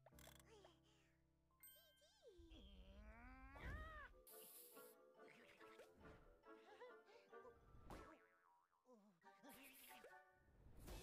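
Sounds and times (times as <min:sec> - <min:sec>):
cartoon character whining: 0:02.8 - 0:04.2.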